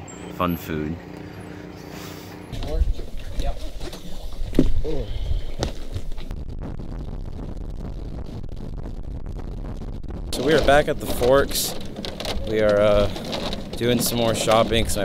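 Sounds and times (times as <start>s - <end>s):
boat engine rumble: 0.0s - 15.0s
low steady hum: 0.0s - 15.0s
voices: 10.4s - 15.0s.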